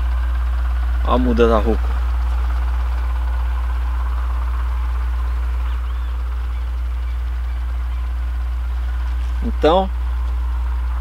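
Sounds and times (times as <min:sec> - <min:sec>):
motor humming: 0:00.0 - 0:11.0.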